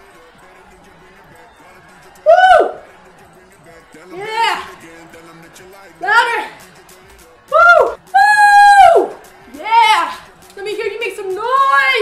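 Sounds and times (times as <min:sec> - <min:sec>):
person whooping: 0:02.2 - 0:02.9, 0:07.5 - 0:10.2.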